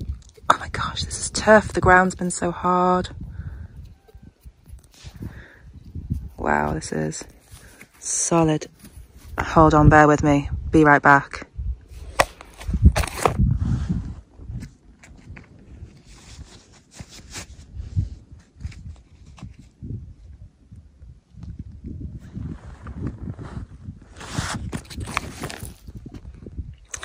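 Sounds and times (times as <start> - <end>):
camera handling rustling and knocks: 12.0 - 13.5.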